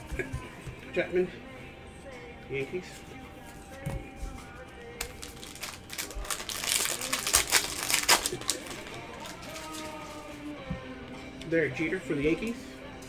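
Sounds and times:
background music: 0.0 - 13.0
card pack crinkling and rustling: 5.0 - 10.4.

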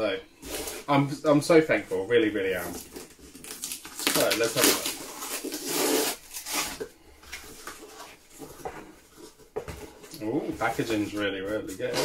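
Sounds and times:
cardboard rustling: 0.3 - 12.0
packing tape ripping: 2.7 - 6.9.

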